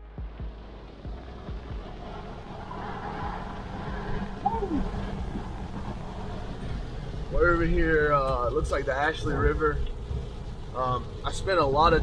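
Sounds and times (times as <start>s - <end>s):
engine and tyre drone: 0.0s - 12.0s.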